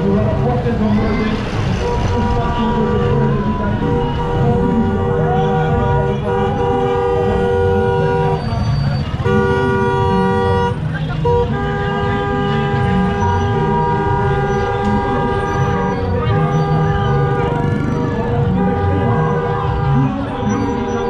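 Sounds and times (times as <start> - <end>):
vehicle engines rumbling: 0.0 - 21.0
car horns two-tone blasts: 1.8 - 17.8.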